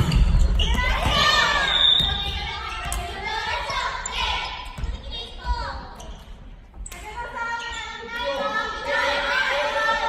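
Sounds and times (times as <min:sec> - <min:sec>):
volleyball slaps: 0:00.0 - 0:03.3.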